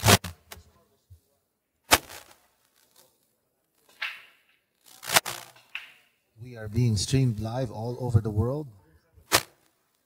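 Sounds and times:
sharp crack with ring: 3.8 - 6.1.

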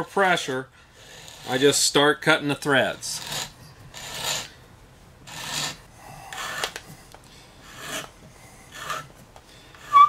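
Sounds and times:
wood being cut by tap scraping: 5.3 - 6.9, 8.7 - 9.1.

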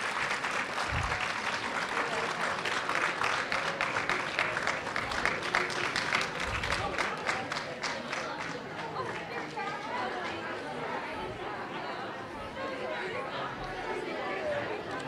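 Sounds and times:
audience clapping: 0.0 - 10.7
crowd voices: 0.0 - 15.0.

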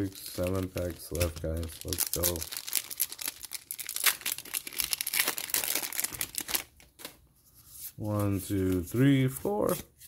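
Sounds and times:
foil wrapper crinkling and tearing: 0.0 - 7.2.

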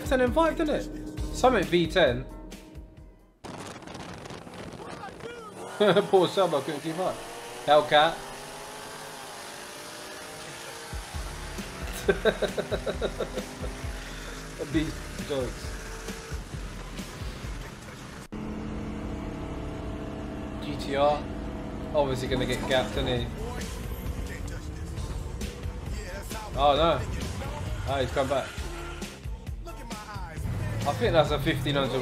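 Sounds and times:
cars racing on highway: 4.2 - 29.3, 30.4 - 32.0
man laughing: 5.1 - 6.9, 11.7 - 15.4
steady droning tone: 5.2 - 29.0.

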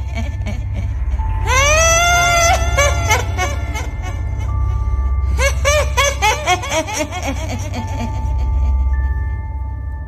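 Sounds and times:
droning horror music: 0.0 - 10.0
old woman cackling laugh: 5.4 - 8.8.

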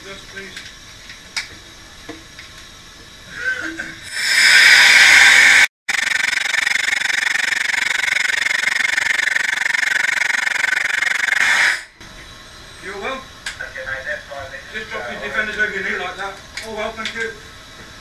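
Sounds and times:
air venting hiss: 0.0 - 5.7, 10.7 - 18.0.

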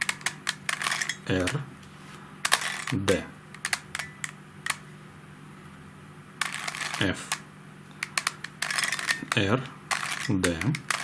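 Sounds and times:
plastic puzzle clicking: 0.0 - 1.6, 3.6 - 4.8, 8.0 - 11.0.

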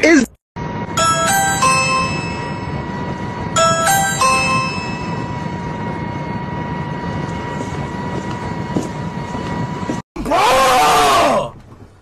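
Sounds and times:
thin high tone: 0.7 - 6.3.

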